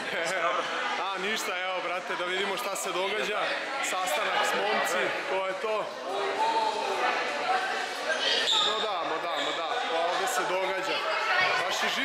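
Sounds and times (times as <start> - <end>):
people talking in echoing hall: 0.0 - 12.0.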